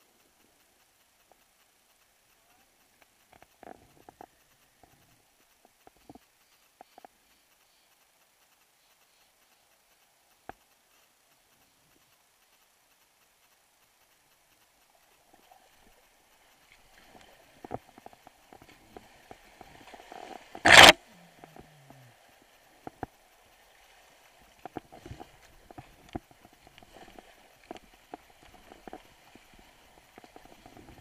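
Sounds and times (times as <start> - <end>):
water splashing: 14.7 - 31.0.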